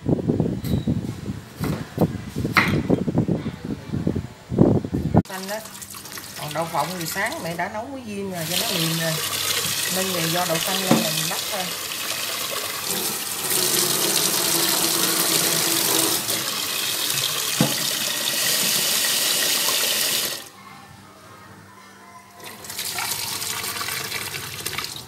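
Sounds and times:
tap water running into metal pot: 5.4 - 7.6, 8.4 - 20.5, 22.6 - 25.0.

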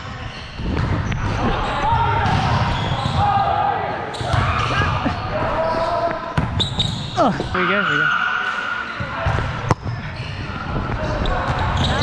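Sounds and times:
players' voices: 0.0 - 12.0
balls and feet thudding on court: 0.6 - 7.6, 9.0 - 12.0.

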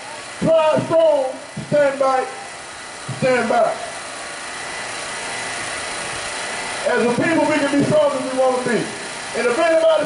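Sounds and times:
man speaking: 0.4 - 2.4, 3.1 - 3.9, 6.8 - 10.0.

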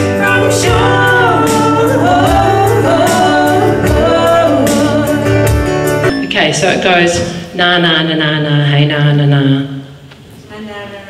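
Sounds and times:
woman singing wordless notes: 0.0 - 5.7.

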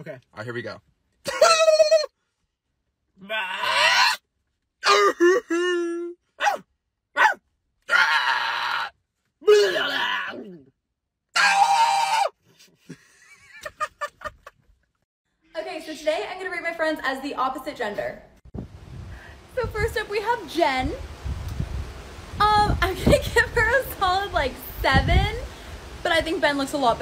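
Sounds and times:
man laughing: 1.2 - 2.1, 4.9 - 6.2, 12.5 - 14.8.

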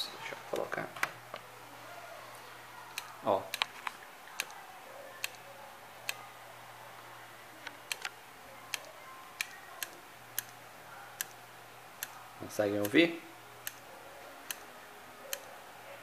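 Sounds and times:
faint steady hum: 0.0 - 16.0
hard drive clicking: 7.6 - 10.6.

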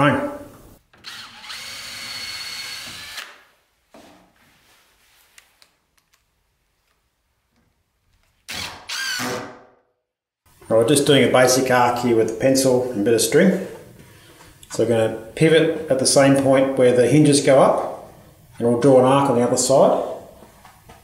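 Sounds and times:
cordless drill whining: 0.9 - 3.4, 8.5 - 9.5.

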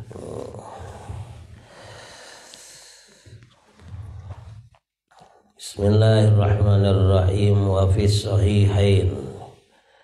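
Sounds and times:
person breathing: 0.6 - 4.6.

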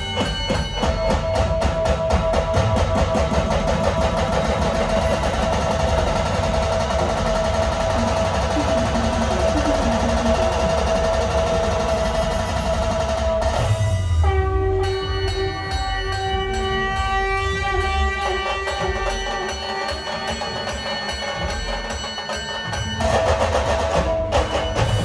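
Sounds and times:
fast even drum strokes: 0.0 - 25.0
loud amplified band music: 0.0 - 25.0.

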